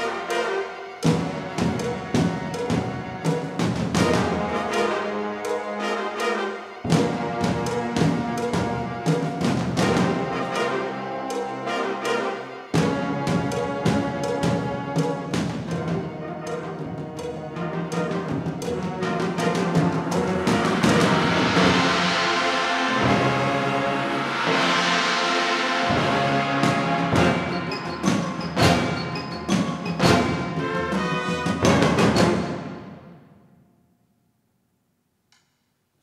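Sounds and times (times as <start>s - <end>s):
concert band playing: 0.0s - 33.1s
timpani and percussion accents: 0.0s - 33.5s.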